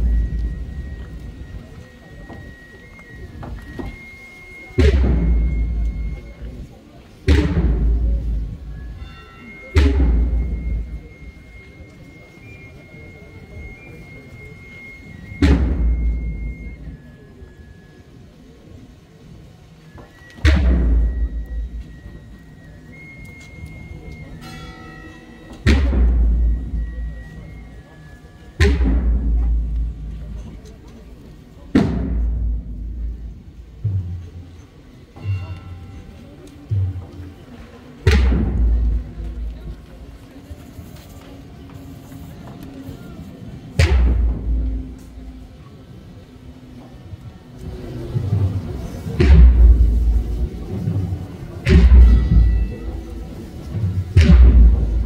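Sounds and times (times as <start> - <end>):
band playing funeral march: 0.0 - 18.0, 20.0 - 45.8, 46.8 - 55.0
held wind notes: 0.0 - 55.0
bass drum and crash cymbals: 4.8 - 6.5, 7.2 - 11.3, 25.3 - 27.8, 28.6 - 30.6, 31.7 - 34.6, 38.1 - 40.0, 43.8 - 45.4, 47.6 - 55.0
bass drum and cymbal stroke: 47.6 - 55.0.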